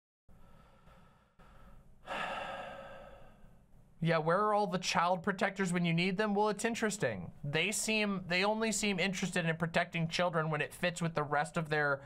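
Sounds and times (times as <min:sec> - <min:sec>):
person sighing: 0:02.0 - 0:03.5.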